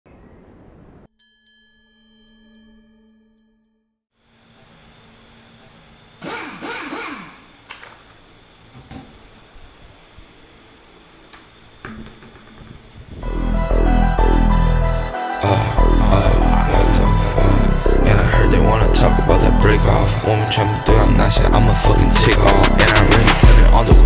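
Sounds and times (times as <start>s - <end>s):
steady hum: 4.2s - 24.0s.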